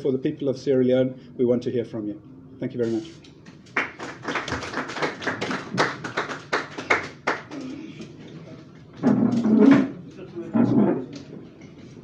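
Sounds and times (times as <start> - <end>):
small audience clapping: 3.5 - 8.2.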